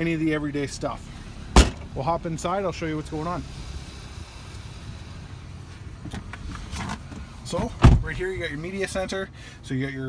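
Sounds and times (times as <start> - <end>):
low steady rumble: 0.0 - 10.0
seat rustling: 5.7 - 8.2.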